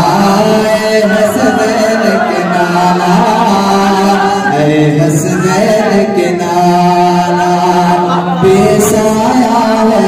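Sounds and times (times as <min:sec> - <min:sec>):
man chanting in long notes: 0:00.0 - 0:10.0.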